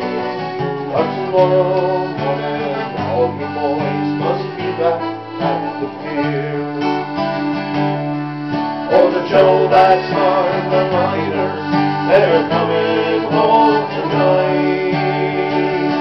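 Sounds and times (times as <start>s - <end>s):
acoustic string band playing: 0.0s - 16.0s.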